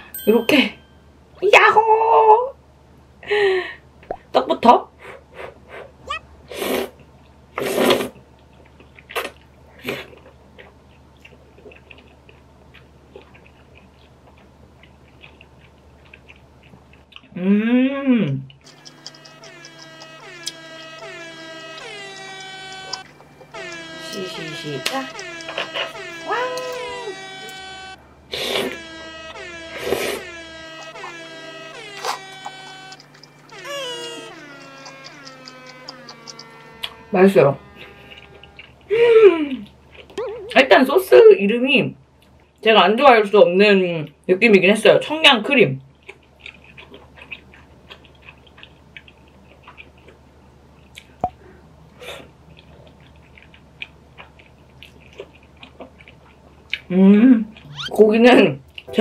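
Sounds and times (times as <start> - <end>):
person slurping noodles: 7.6 - 8.2
quiet chewing: 8.4 - 17.4, 18.3 - 20.2, 45.8 - 57.9.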